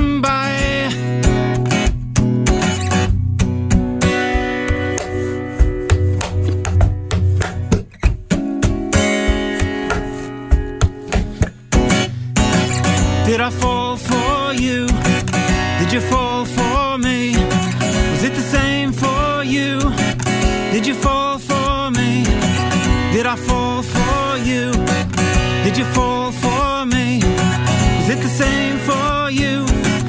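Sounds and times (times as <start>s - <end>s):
strummed acoustic guitar: 0.0s - 30.0s.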